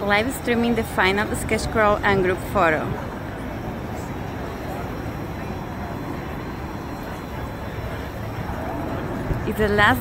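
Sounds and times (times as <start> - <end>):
faint crowd murmur: 0.0 - 10.0
low traffic rumble: 0.0 - 10.0.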